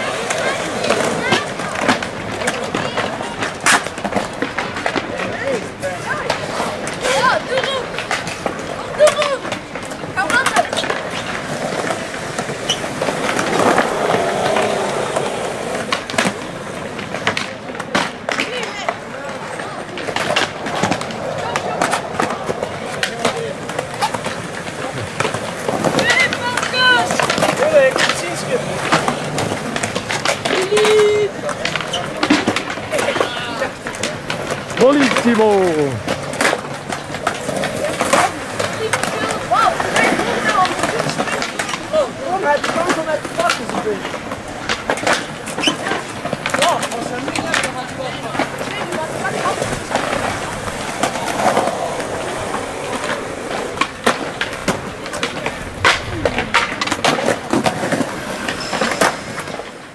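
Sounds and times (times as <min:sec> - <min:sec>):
people talking: 0:00.0 - 0:03.7, 0:04.9 - 0:36.1, 0:37.6 - 0:44.2, 0:45.6 - 0:57.3
skateboard clacks: 0:00.0 - 0:59.9
skateboard wheels rolling on concrete: 0:00.0 - 0:59.9.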